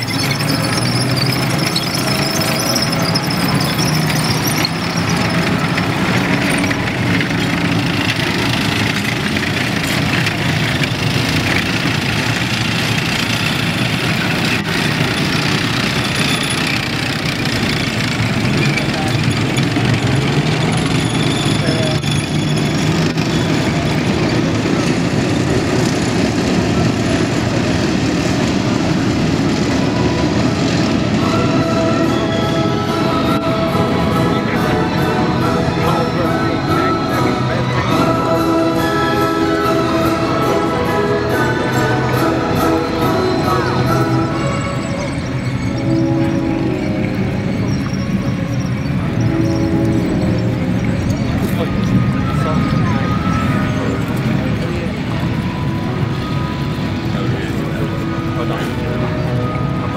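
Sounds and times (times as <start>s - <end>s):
tracks clattering over dirt: 0.0s - 32.0s
tracked vehicle engines running: 0.0s - 59.9s.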